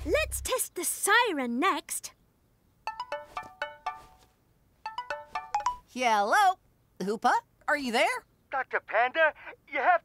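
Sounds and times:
cartoon ringtone melody: 2.9s - 4.2s, 4.8s - 5.9s.

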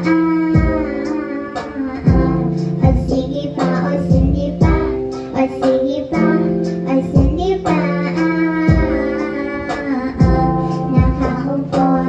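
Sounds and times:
instrumental accompaniment: 0.0s - 12.0s
low thumping beat: 0.0s - 12.0s
woman singing: 0.0s - 12.0s.

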